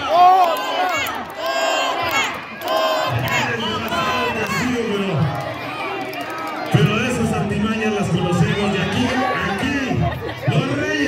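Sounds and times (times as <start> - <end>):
crowd shouting and cheering: 0.0 - 11.0.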